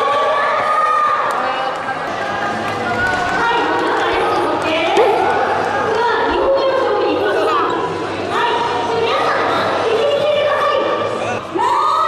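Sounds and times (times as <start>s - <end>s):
many voices echoing in a gym: 0.0s - 12.0s.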